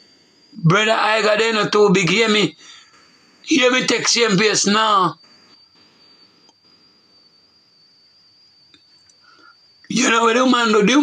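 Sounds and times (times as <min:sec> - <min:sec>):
faint high-pitched whine: 0:00.0 - 0:11.0
low hiss: 0:00.0 - 0:11.0.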